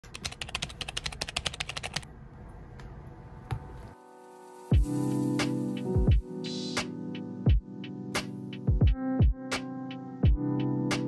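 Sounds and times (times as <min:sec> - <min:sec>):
computer keyboard typing: 0:00.0 - 0:02.0.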